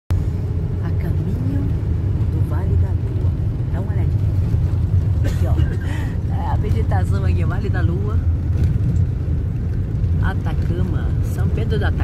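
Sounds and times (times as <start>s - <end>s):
coach engine and road rumble: 0.1s - 12.0s.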